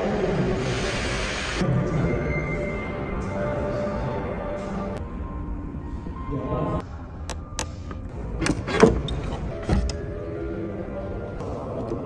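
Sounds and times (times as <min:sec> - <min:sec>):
fuel door actuator clicks: 0:07.3 - 0:10.1.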